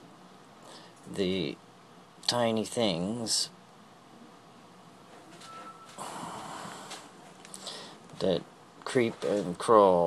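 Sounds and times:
person breathing: 0.6 - 1.0, 6.0 - 8.0.

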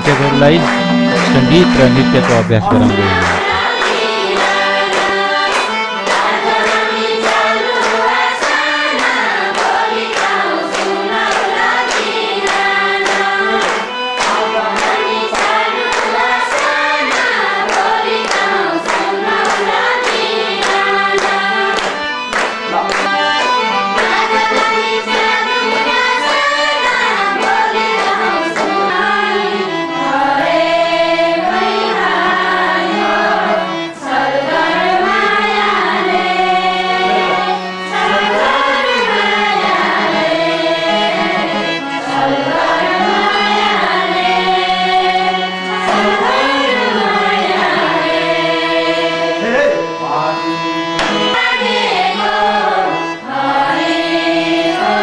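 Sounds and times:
steady low note: 0.0 - 3.6
hand claps: 0.0 - 29.4, 45.6 - 47.8, 50.9 - 52.8
women singing in unison: 3.3 - 22.1, 23.0 - 49.3, 51.1 - 55.0.

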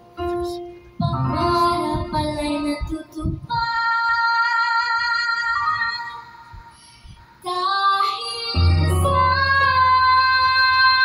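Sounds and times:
musical accompaniment: 0.0 - 3.2, 8.4 - 11.0
girl singing into microphone: 0.2 - 11.0.

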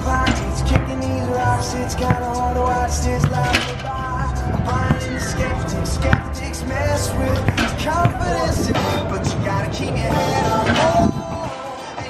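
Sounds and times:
music playing: 0.0 - 12.0
basketballs bouncing on court: 2.0 - 2.4.

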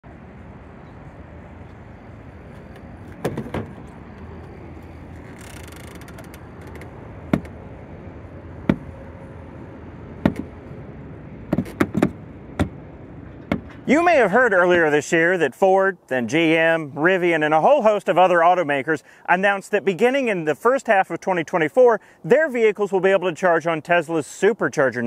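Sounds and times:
outdoor background noise: 0.0 - 25.0
plastic and metal clunks and clicks: 2.6 - 4.0.

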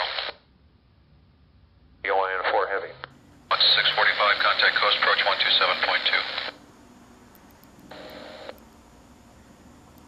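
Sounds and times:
burst of steady radio noise: 0.0 - 0.4, 2.1 - 6.6, 7.9 - 8.5
radio squelch: 0.0 - 0.4, 2.1 - 6.6
radio transmission: 0.0 - 0.4, 2.1 - 6.6, 7.9 - 8.6
faint radio hiss: 0.0 - 10.0
soft clicks: 7.3 - 7.9.

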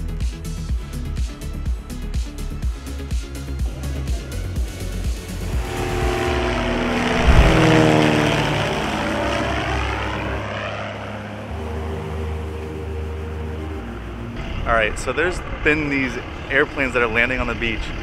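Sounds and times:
propeller plane flying overhead: 3.6 - 18.0.

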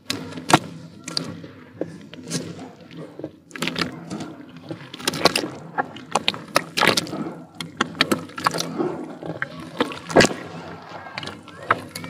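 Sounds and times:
muddy water sloshing and splashing: 0.0 - 12.0.

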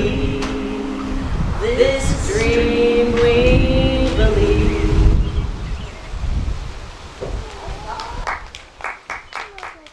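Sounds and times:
person singing: 0.0 - 5.3
low rumble: 0.0 - 7.4
people clapping: 7.9 - 9.9.

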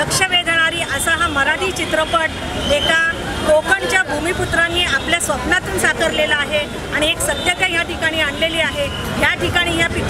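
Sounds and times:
low rumble of street traffic: 0.0 - 10.0
woman speaking into microphones: 0.0 - 10.0.

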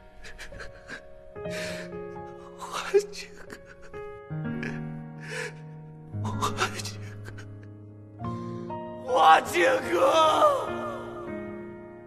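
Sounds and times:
background music: 0.0 - 12.0
woman sobbing with gasping breaths: 0.1 - 7.7.

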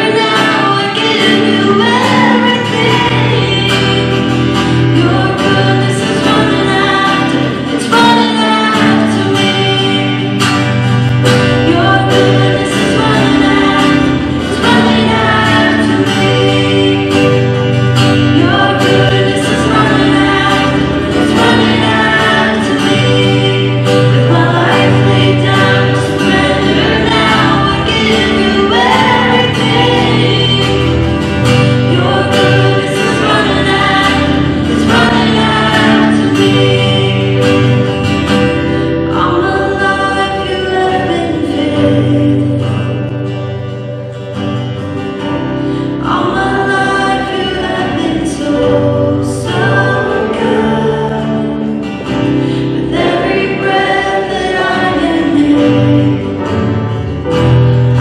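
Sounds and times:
acoustic guitar: 0.0 - 58.0
worship band with singers: 0.0 - 58.0.

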